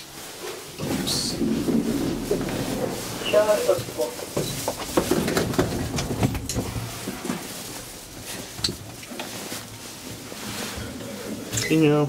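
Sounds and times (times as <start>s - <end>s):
elevator humming: 0.8s - 5.4s.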